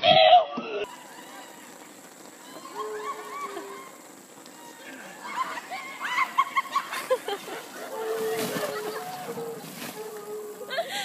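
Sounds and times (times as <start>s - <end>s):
people shrieking and yelling: 0.0s - 11.0s
splashing crash into pool: 7.8s - 10.1s.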